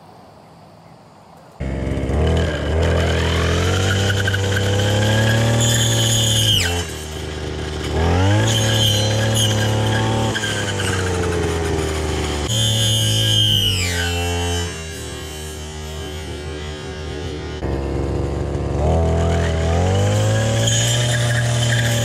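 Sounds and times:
brush cutter engine revving: 1.6 - 22.0.

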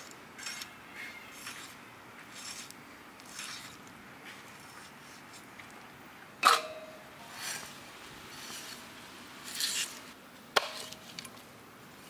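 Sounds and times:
cleaver chopping into wooden block: 10.6 - 11.0.

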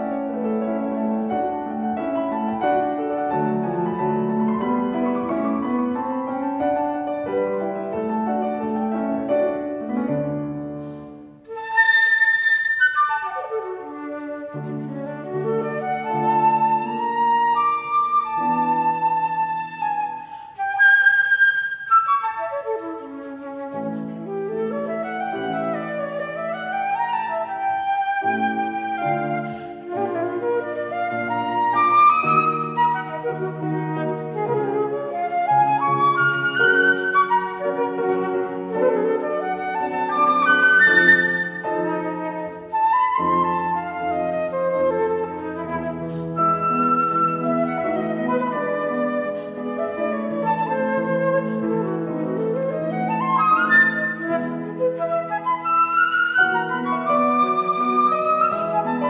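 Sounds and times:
piano accompaniment: 0.0 - 59.0
flute playing fast runs: 11.5 - 59.0.

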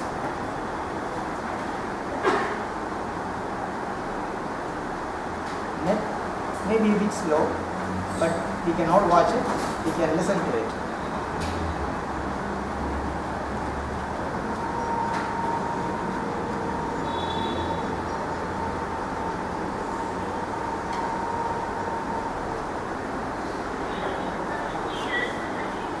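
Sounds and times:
room background noise: 0.0 - 26.0.

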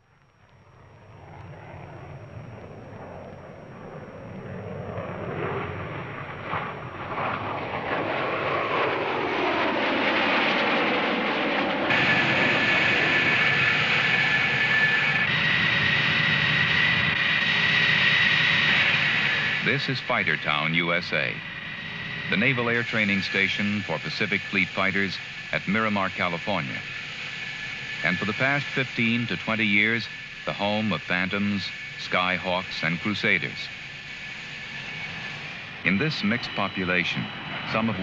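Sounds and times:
high-pitched turbine whine: 0.0 - 38.0
jet passing overhead: 0.5 - 38.0.

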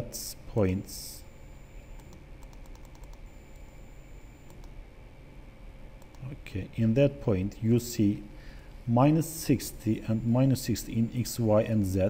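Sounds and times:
low room hum: 0.0 - 12.0
computer mouse clicks: 2.0 - 3.7, 4.4 - 4.8, 6.0 - 6.3.

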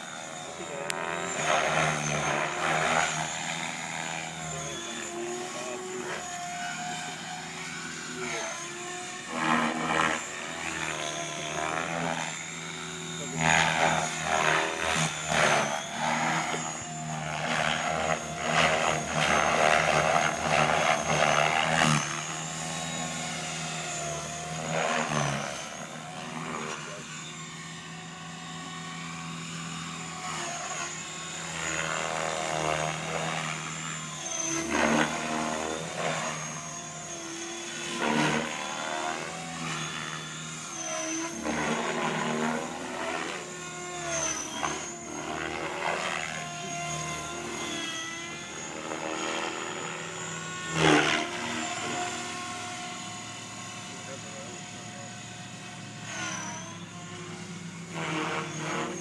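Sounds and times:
high motor whine: 0.0 - 59.0.

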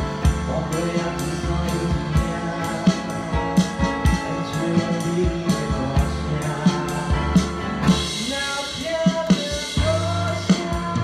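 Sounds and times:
drum kit beat: 0.0 - 11.0
live band playing: 0.0 - 11.0.

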